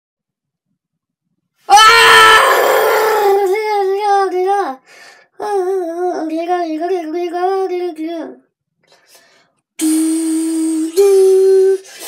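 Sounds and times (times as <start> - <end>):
child singing a high wavering note: 9.8 - 12.0.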